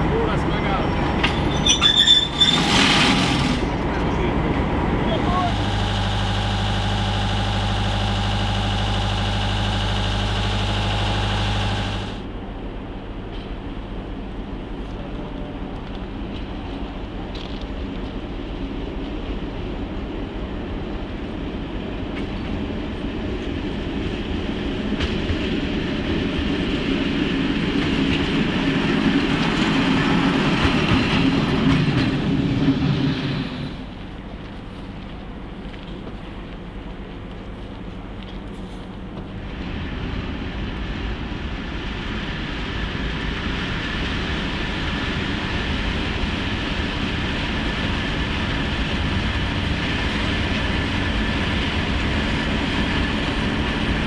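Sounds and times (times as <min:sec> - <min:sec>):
locomotive engine approaching: 0:00.0 - 0:54.0
diesel locomotive idling: 0:03.6 - 0:21.9.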